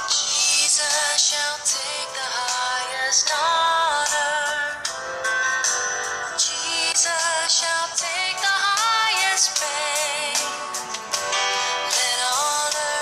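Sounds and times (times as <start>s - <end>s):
music with sung vocal melody: 0.0s - 13.0s.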